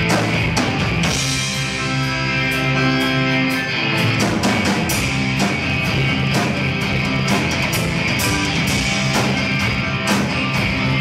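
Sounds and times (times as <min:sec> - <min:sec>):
distorted electric guitars: 0:00.0 - 0:11.0
drum kit: 0:00.0 - 0:11.0
keyboard: 0:00.0 - 0:11.0.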